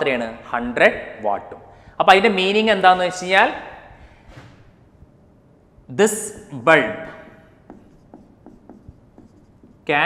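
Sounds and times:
marker writing on whiteboard: 0:07.0 - 0:10.0.

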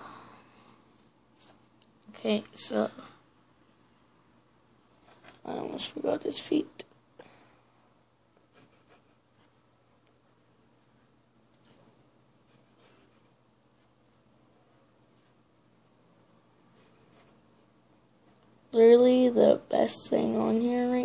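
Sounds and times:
pencil scratching on paper: 0:08.4 - 0:09.6, 0:12.4 - 0:14.2, 0:16.6 - 0:18.4.

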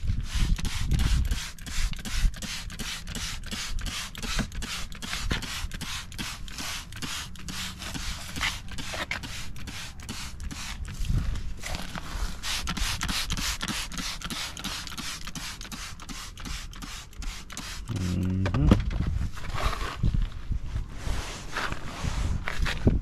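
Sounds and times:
towel rubbing car interior: 0:00.2 - 0:10.8, 0:11.6 - 0:18.4, 0:21.0 - 0:22.5
spray bottle squirts: 0:00.2 - 0:11.1, 0:11.7 - 0:18.4.

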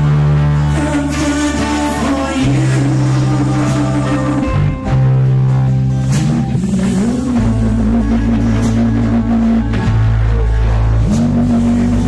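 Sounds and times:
loud rock music: 0:00.0 - 0:12.0
low bass drone: 0:00.0 - 0:12.0.

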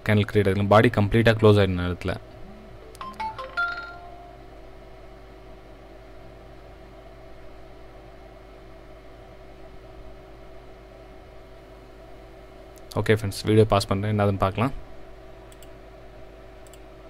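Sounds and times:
low background hum and hiss: 0:00.0 - 0:17.0.

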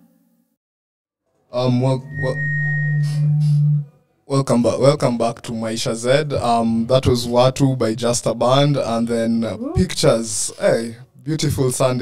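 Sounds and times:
brief high tone: 0:01.9 - 0:03.9.

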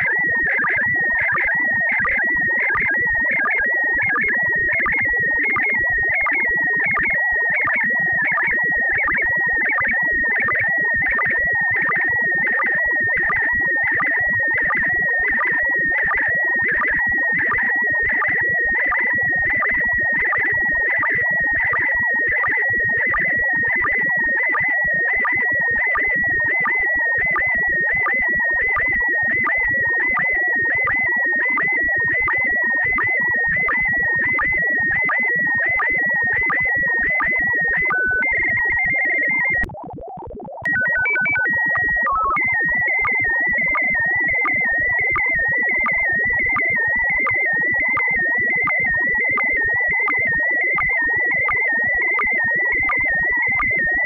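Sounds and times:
high electronic whistle: 0:37.8 - 0:39.6, 0:40.6 - 0:42.4.

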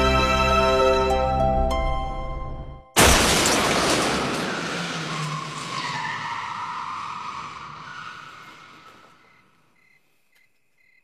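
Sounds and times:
loud noisy screeching: 0:04.0 - 0:09.4.

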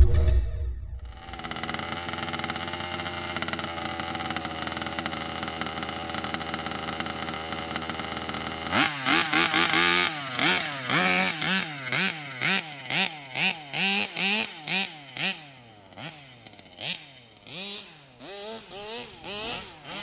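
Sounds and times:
two-stroke engine idling and revving: 0:01.1 - 0:20.0.

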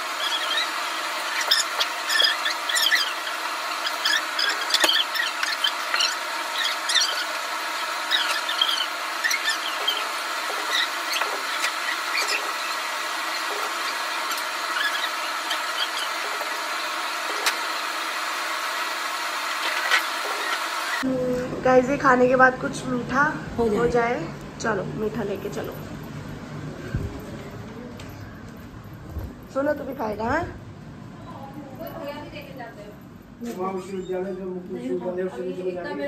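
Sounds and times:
steady hum: 0:00.0 - 0:33.3
high squeaky sped-up chirps: 0:00.2 - 0:17.0.

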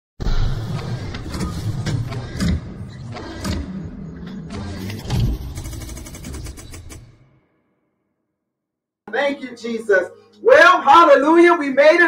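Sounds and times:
sharp mechanical hits: 0:00.4 - 0:07.4.

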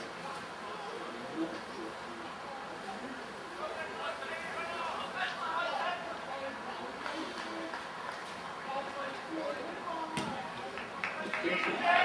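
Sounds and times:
faint spectator chatter: 0:00.0 - 0:12.0.

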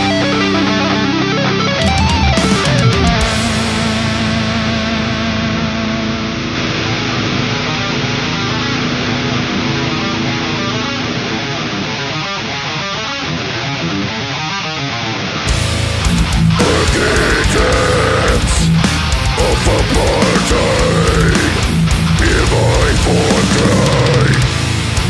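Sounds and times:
metal band with drums: 0:00.0 - 0:05.6, 0:15.4 - 0:25.0
distorted electric guitar chords: 0:00.0 - 0:25.0.

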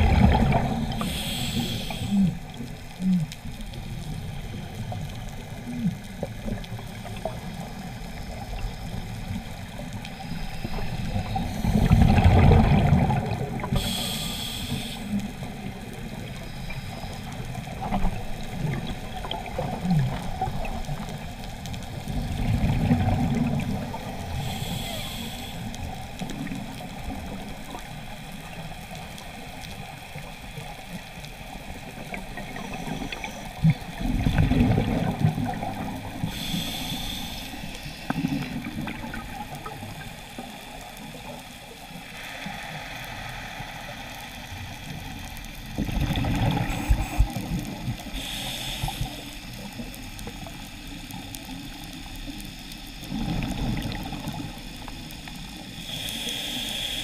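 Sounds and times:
bubbles gurgling underwater: 0:00.0 - 0:01.3, 0:11.0 - 0:14.0, 0:17.5 - 0:24.1, 0:31.7 - 0:36.5, 0:38.1 - 0:40.1, 0:45.0 - 0:48.2, 0:53.0 - 0:55.6
steady underwater hiss: 0:00.0 - 0:57.0
regulator hissing inhale: 0:00.7 - 0:02.6, 0:09.3 - 0:12.2, 0:13.6 - 0:17.5, 0:24.0 - 0:26.2, 0:36.0 - 0:39.2, 0:41.9 - 0:45.1, 0:46.6 - 0:50.4, 0:54.5 - 0:57.0.

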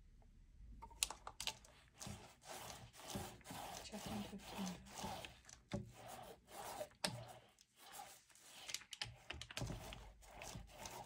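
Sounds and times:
paint roller rubbing strokes: 0:01.6 - 0:11.0.

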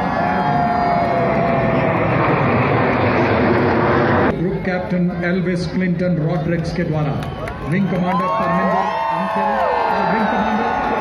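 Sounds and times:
high jet whine: 0:00.0 - 0:06.2
jet engine noise: 0:00.0 - 0:11.0.

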